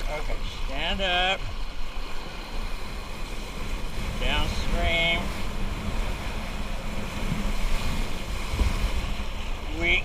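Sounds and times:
rushing water: 0:00.0 - 0:10.0
wind buffeting microphone: 0:01.6 - 0:10.0.

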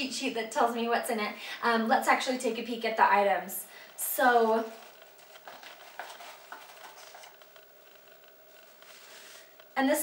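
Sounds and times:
cardboard box and paper rustling: 0:04.7 - 0:07.4.

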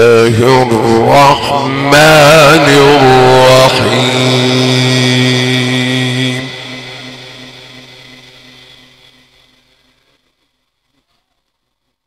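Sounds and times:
man reciting long held note: 0:00.0 - 0:08.1.

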